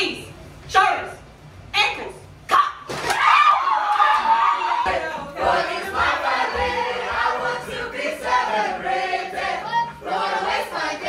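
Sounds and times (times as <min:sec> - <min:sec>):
people shouting: 0:02.5 - 0:05.3.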